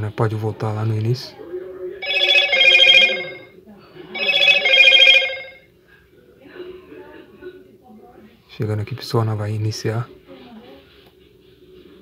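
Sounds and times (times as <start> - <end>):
telephone ringtone trilling: 2.0 - 3.5, 4.2 - 5.6.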